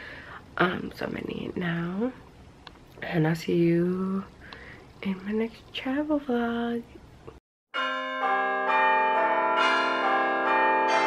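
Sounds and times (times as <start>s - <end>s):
ringing bell-like chimes music: 7.8s - 11.0s.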